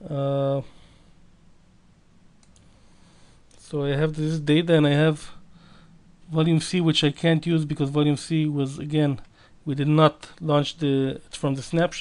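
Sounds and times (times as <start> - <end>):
computer mouse click: 2.4 - 2.7.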